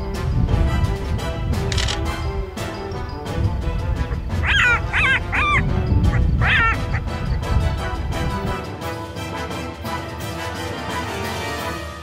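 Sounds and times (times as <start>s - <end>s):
background music: 0.0s - 12.0s
jackal yipping: 4.0s - 7.4s.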